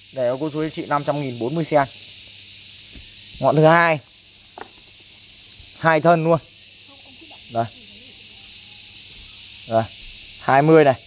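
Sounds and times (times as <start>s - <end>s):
high-pitched hiss with whistle tones: 0.0s - 11.0s.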